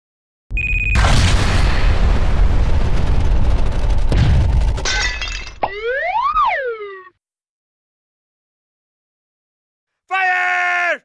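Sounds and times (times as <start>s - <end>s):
explosion rumble: 0.5s - 5.7s
shattering crash: 1.0s - 6.2s.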